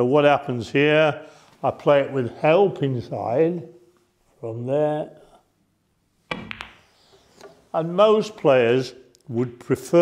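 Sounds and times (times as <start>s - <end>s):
cue striking ball: 6.3s - 6.8s
snooker balls clicking: 6.3s - 6.8s.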